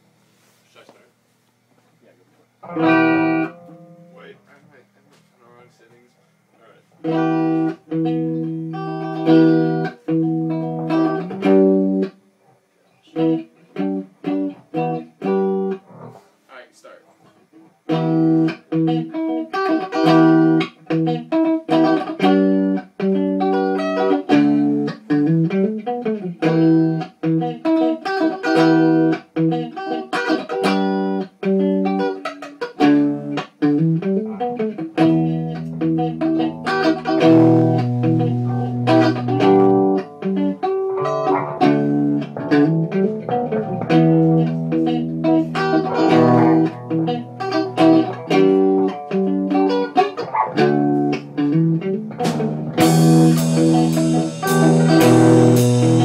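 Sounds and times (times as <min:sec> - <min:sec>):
guitar plucked notes: 0:02.6 - 0:04.6, 0:07.0 - 0:12.2, 0:13.0 - 0:16.2, 0:17.8 - 0:56.0
sustained bass notes: 0:33.8 - 0:49.5, 0:50.3 - 0:56.0.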